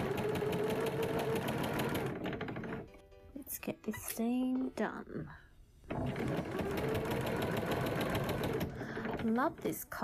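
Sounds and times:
sewing machine stitching: 0:00.0 - 0:03.0, 0:05.8 - 0:09.8.

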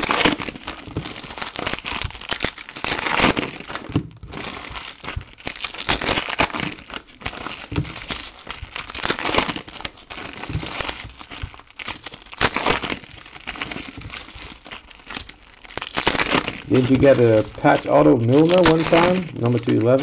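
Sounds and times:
foil wrappers crinkling and tearing: 0:00.0 - 0:20.0.

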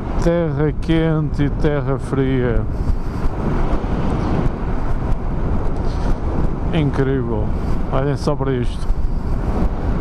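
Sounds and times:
wind rush on microphone: 0:00.0 - 0:10.0.

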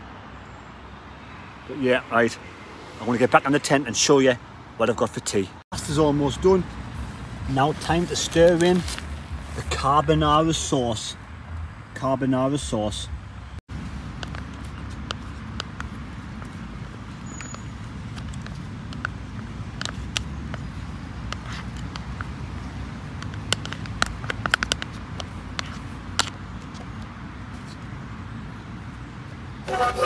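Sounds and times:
low rumble of road traffic: 0:00.0 - 0:30.0
metal spoon scraping mess tin: 0:29.7 - 0:30.0.

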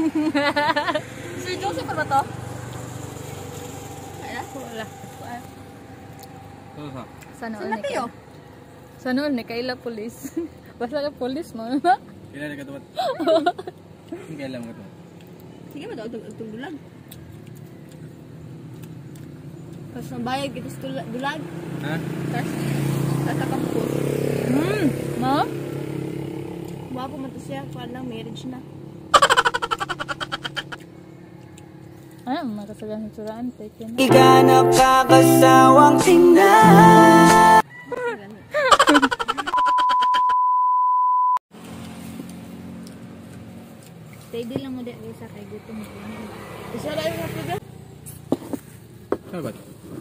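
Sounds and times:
vehicle engine running: 0:00.0 - 0:09.8
steady beep tone: 0:39.5 - 0:41.4.

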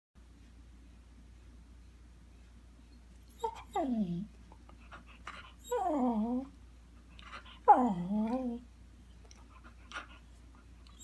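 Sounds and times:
small dog whining: 0:03.3 - 0:04.3, 0:05.6 - 0:06.5, 0:07.6 - 0:08.6.

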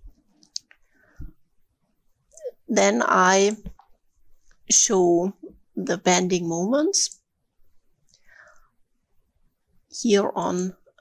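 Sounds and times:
woman speaking: 0:02.4 - 0:03.7, 0:04.7 - 0:07.2, 0:09.9 - 0:10.8.

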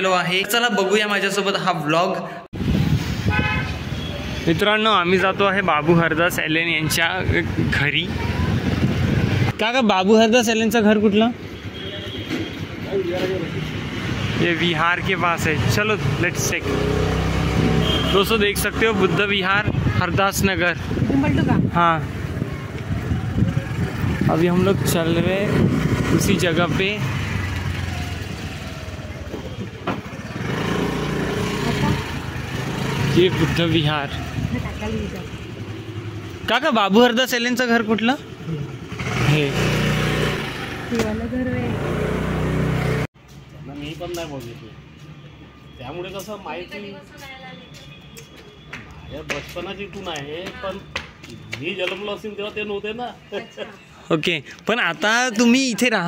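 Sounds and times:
man talking: 0:49.1 - 0:56.0.

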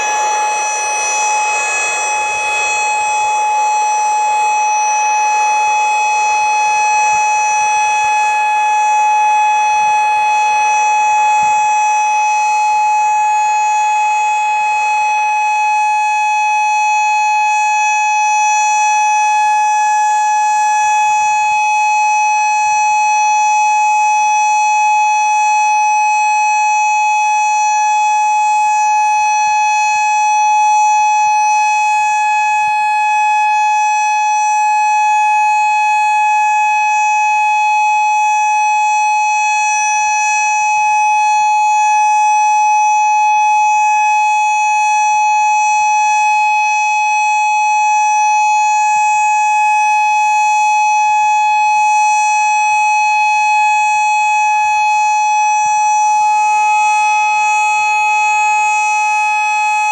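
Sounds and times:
warning siren steady tone: 0:00.0 - 0:59.9.

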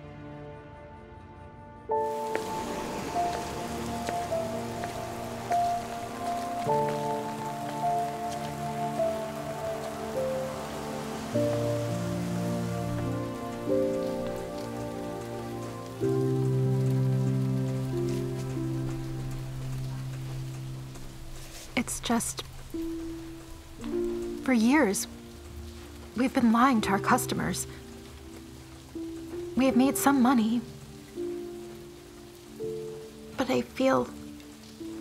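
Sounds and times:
slow music with held chords: 0:00.0 - 0:21.8, 0:22.4 - 0:35.0
steady rain falling: 0:00.0 - 0:35.0.

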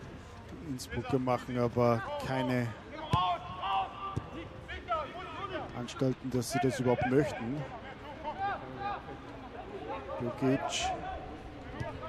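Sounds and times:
distant shouts: 0:02.0 - 0:05.8.

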